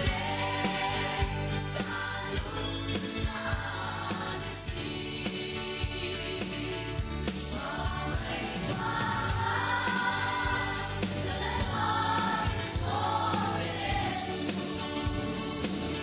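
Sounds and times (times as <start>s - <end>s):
choir singing a hymn: 0.0s - 16.0s
instrumental accompaniment with beat: 0.0s - 16.0s.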